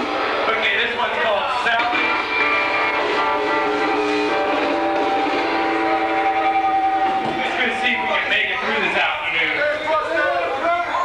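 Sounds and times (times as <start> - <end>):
electric guitar chord ringing: 1.7 - 7.4.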